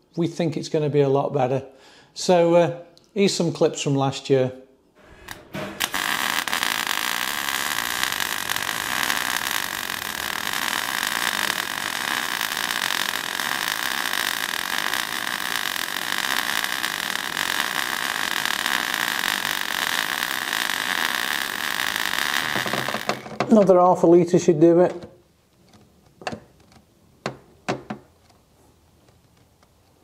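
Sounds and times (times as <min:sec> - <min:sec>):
welding arc crackling hiss: 0:05.0 - 0:23.5.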